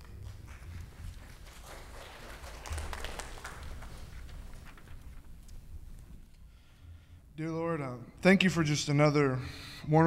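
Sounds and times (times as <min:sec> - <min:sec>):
congregation clapping: 0:00.0 - 0:04.9.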